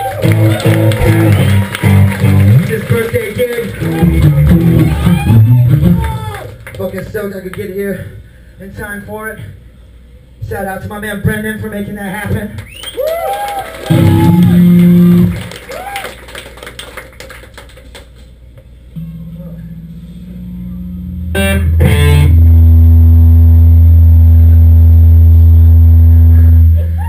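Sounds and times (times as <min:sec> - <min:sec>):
electric guitar picking: 0:00.2 - 0:02.7, 0:03.8 - 0:06.1, 0:13.9 - 0:15.5, 0:18.9 - 0:26.9
loud low bass note: 0:03.8 - 0:06.2, 0:18.9 - 0:26.9
guitar chord ringing: 0:13.9 - 0:15.3, 0:18.9 - 0:26.8.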